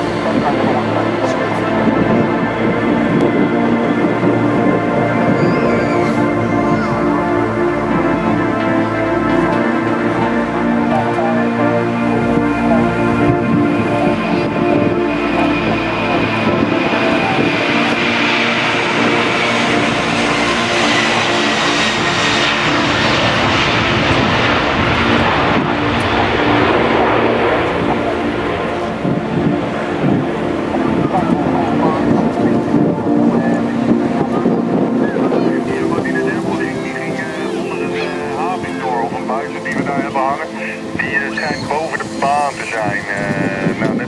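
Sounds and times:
jet engines roaring at takeoff: 0:00.0 - 0:44.0.

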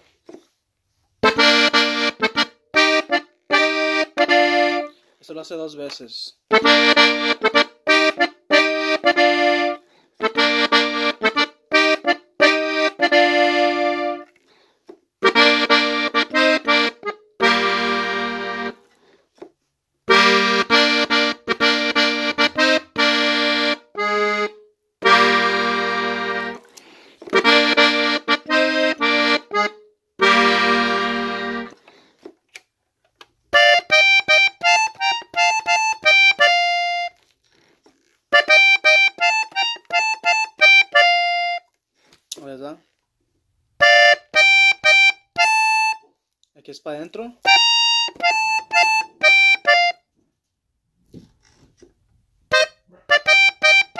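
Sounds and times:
accordion bass and chords: 0:00.0 - 0:32.6, 0:33.2 - 0:42.7, 0:43.4 - 0:50.2, 0:51.9 - 0:53.9
button accordion melody: 0:01.2 - 0:05.0, 0:06.5 - 0:14.4, 0:15.2 - 0:19.0, 0:20.0 - 0:32.0, 0:33.5 - 0:37.3, 0:38.2 - 0:41.8, 0:43.7 - 0:46.1, 0:47.4 - 0:50.2, 0:52.5 - 0:53.9.

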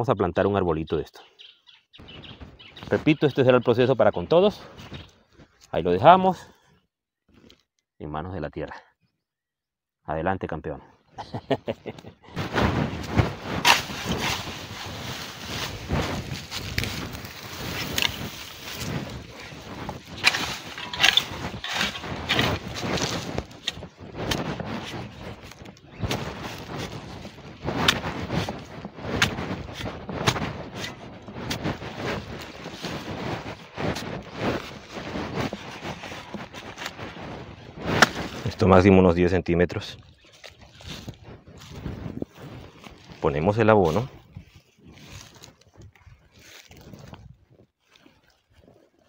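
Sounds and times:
soil clods breaking loose: 0:12.4 - 0:38.6
spade chopping into hard soil: 0:13.0 - 0:14.7, 0:17.7 - 0:26.9, 0:37.9 - 0:38.4.

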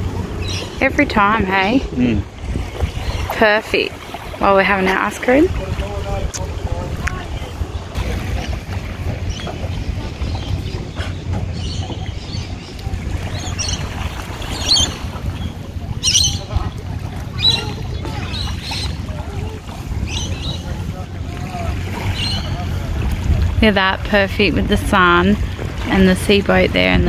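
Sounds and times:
wind rumbling on microphone: 0:00.0 - 0:27.0.

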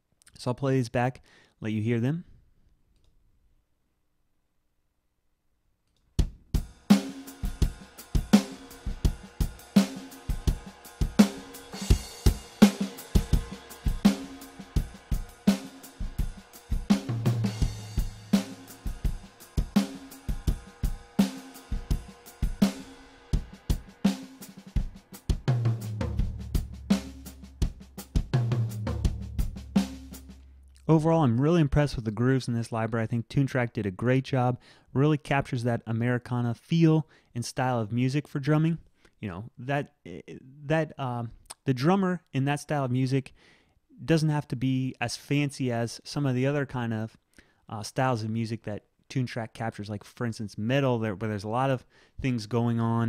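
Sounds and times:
acoustic drum kit groove: 0:06.2 - 0:30.8.

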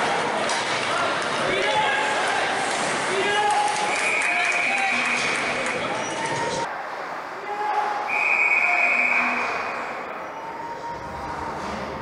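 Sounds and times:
referee's whistle blast: 0:08.1 - 0:09.9
crowd murmur: 0:08.8 - 0:12.0.

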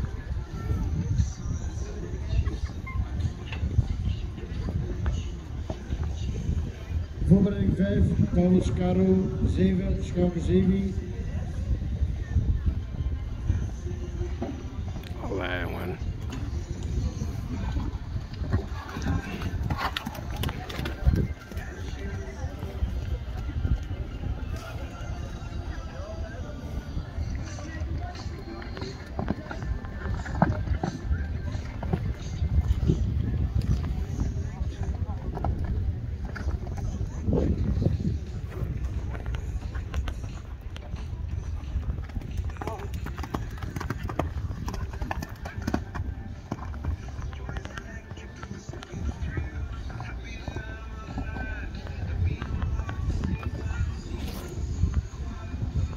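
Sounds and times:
background voices: 0:15.9 - 0:55.9
horse hoofbeats on sand: 0:27.2 - 0:55.9.

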